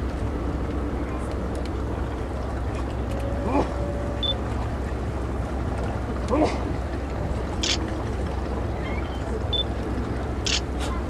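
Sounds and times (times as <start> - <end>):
low outdoor rumble: 0.0 - 11.0
faint voices: 0.3 - 11.0.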